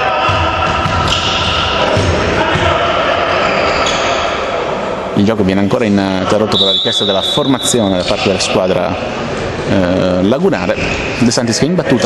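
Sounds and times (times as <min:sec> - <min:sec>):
murmur of voices: 0:00.0 - 0:12.0
ball bouncing on wooden floor: 0:00.2 - 0:02.7.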